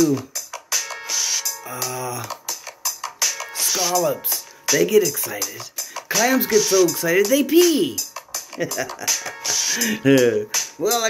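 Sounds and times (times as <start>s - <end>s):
man laughing: 8.4s - 10.5s.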